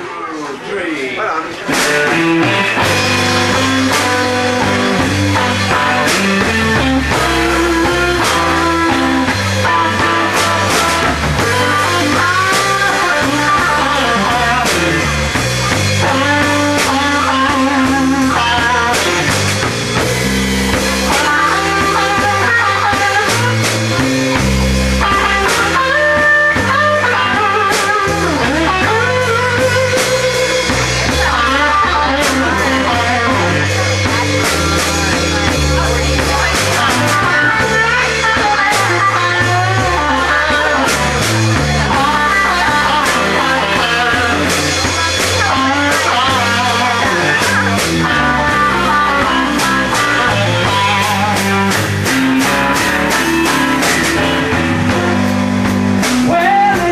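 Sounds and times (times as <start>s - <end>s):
blues-rock band playing: 0.0s - 56.9s
lead electric guitar bending notes: 1.6s - 56.9s
person counting in: 56.1s - 56.9s.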